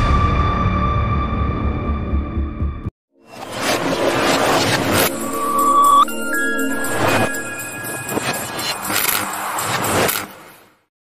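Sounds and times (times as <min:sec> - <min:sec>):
intro music: 0:01.8 - 0:10.0
noisy whoosh effect: 0:03.2 - 0:10.5.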